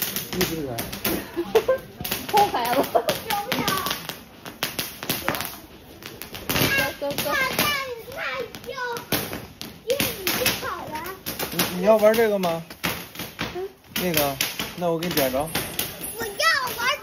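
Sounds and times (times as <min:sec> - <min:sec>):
people talking: 0:00.0 - 0:04.0, 0:06.6 - 0:09.1, 0:09.8 - 0:12.6, 0:16.1 - 0:17.0
fireworks crackling and popping: 0:00.0 - 0:17.0.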